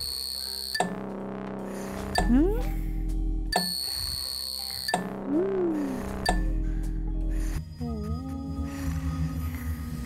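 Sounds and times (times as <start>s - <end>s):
sustained electric tones: 0.0s - 7.2s.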